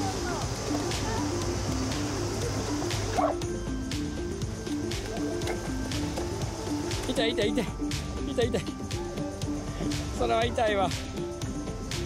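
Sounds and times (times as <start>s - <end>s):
background music: 0.0s - 12.0s
dog barking: 3.1s - 3.4s.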